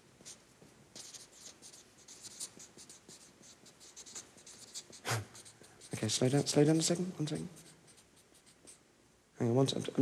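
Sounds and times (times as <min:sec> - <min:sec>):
marker pen writing on paper: 0:00.2 - 0:08.8.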